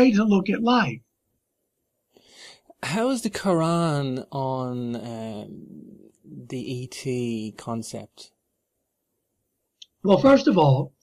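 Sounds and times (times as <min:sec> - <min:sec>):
person breathing in: 0:02.1 - 0:02.7
person speaking: 0:02.7 - 0:08.4.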